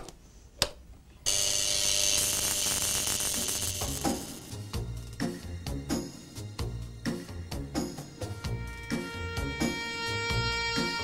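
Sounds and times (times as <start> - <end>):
electrical buzzing hiss: 1.3 - 6.8.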